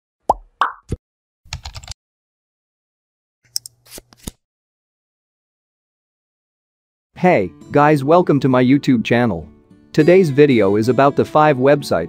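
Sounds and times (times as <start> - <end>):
pitched pop sound effects: 0.3 - 1.0
keyboard typing clicks: 1.5 - 2.0.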